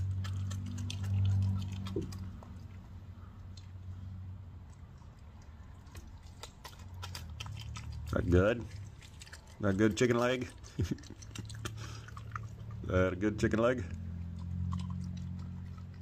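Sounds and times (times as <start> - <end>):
animal chewing and crunching bone: 0.0 - 16.0.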